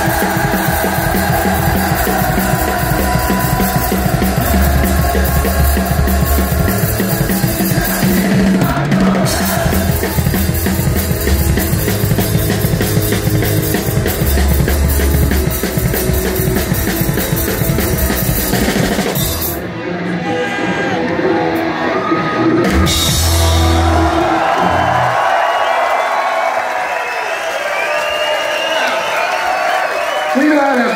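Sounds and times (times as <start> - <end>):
punk rock band playing live: 0.0 - 25.2
crowd cheering and yelling: 0.0 - 30.9.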